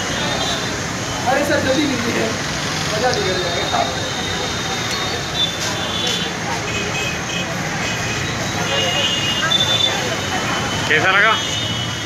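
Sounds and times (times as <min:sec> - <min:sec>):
indistinct voices talking: 0:00.0 - 0:12.0
steady background noise: 0:00.0 - 0:12.0.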